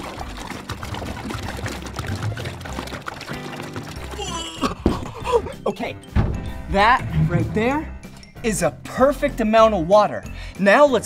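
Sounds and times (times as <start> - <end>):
water pouring into tank: 0.0 - 4.6
background music: 0.0 - 11.0.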